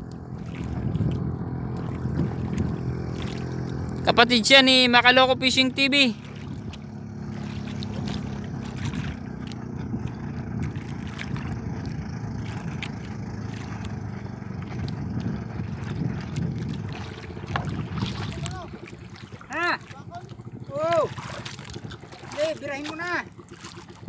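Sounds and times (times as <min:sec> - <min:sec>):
boat engine humming: 0:00.0 - 0:24.0.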